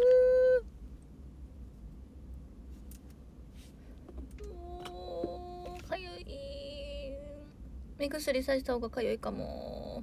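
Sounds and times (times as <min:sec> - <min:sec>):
woman humming: 0:00.0 - 0:00.7, 0:04.4 - 0:07.5.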